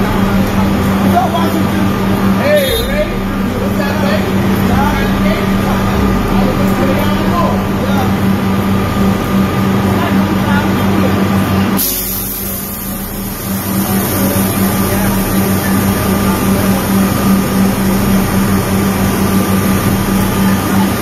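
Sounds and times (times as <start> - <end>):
traffic noise with low hum: 0.0 - 21.0.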